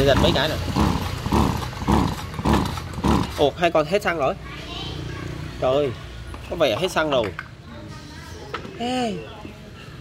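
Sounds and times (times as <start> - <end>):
engine cranking: 0.0 - 3.7.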